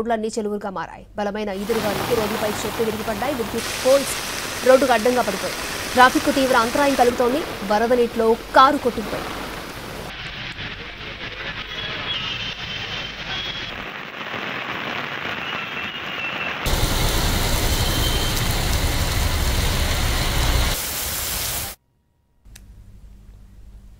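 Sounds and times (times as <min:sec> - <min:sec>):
heavy rain pouring: 0:01.6 - 0:10.2, 0:16.6 - 0:21.8
street traffic: 0:16.7 - 0:20.8.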